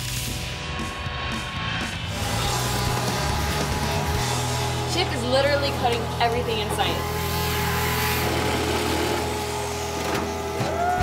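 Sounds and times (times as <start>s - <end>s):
background music: 0.0s - 11.0s
power tool cutting sheet steel: 2.0s - 10.8s.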